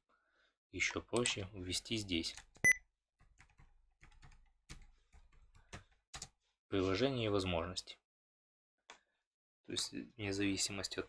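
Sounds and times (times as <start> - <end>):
typing on computer keyboard: 2.4 - 6.4.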